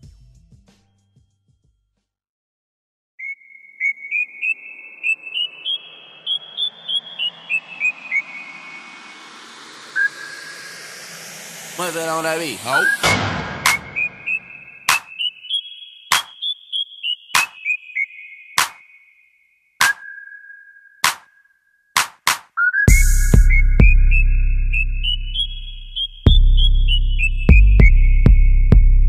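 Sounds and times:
high synthesizer melody: 4.7 - 16.2
heavy drum hits: 13.0 - 15.0
deep sustained bass: 22.9 - 29.0.

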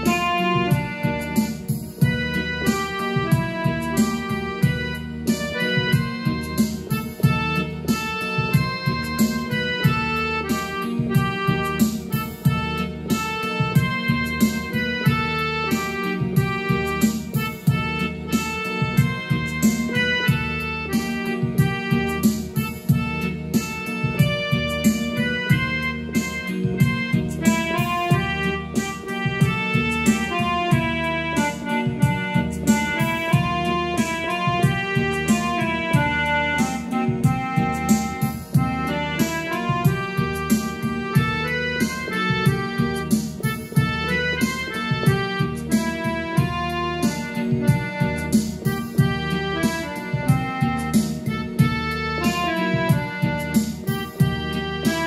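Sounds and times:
sustained low chords: 0.0 - 48.4
electronic keyboard melody: 0.0 - 55.0
steady beat: 0.0 - 55.0.

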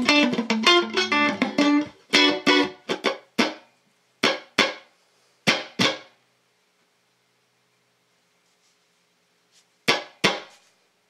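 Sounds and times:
percussive electric guitar hits: 0.0 - 3.6, 4.2 - 4.8, 5.5 - 6.1.

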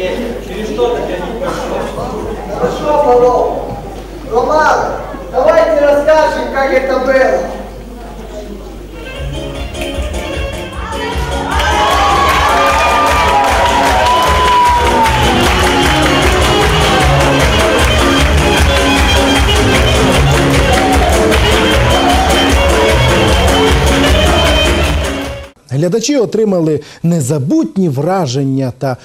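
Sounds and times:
lively dance music: 9.0 - 25.6
crowd cheering: 11.0 - 25.6.

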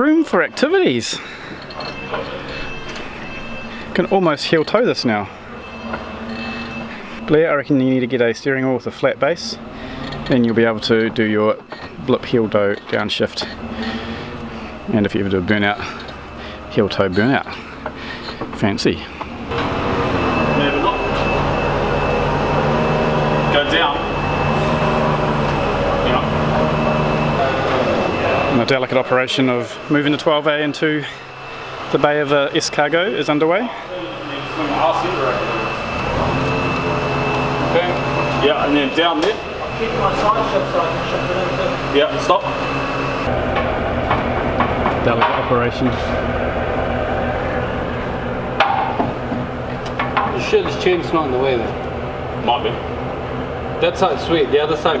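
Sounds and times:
forklift engine idling: 9.4 - 50.2.

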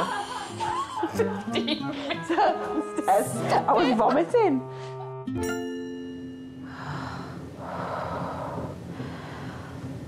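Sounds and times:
woman breathing heavily: 4.6 - 5.2, 6.5 - 10.0.

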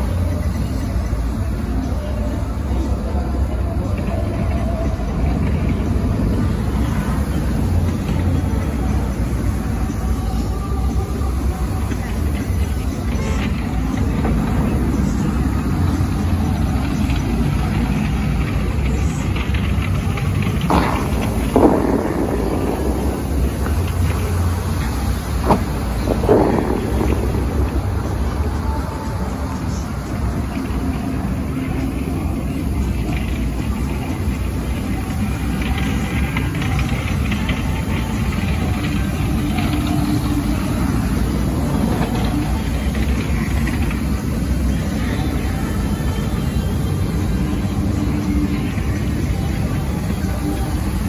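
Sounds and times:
fountain water jets spraying: 0.0 - 51.0.

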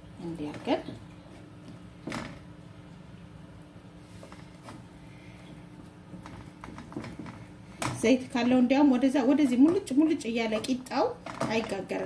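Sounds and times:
fingertips patting dough in pan: 5.6 - 12.0.

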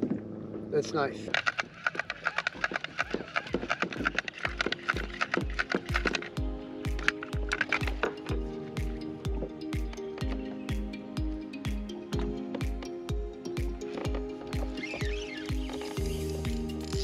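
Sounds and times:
crisp percussion: 1.2 - 17.0
held chords: 2.7 - 17.0
kick drum beat: 5.4 - 17.0.

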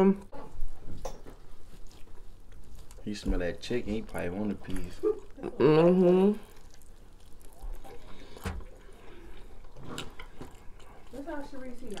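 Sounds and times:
person chewing crispy chicken: 1.4 - 12.0.

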